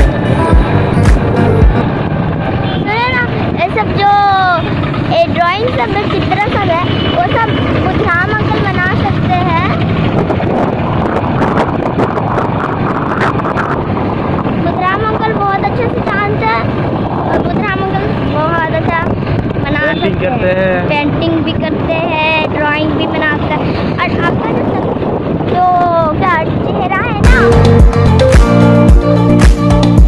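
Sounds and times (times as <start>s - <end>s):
wind rush and road noise: 0.0s - 28.4s
traffic rumble: 0.0s - 30.0s
high singing voice: 27.2s - 28.5s.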